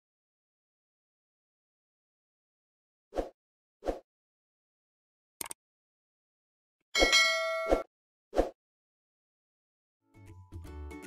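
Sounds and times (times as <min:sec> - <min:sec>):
bright metallic ding: 0:07.0 - 0:07.9.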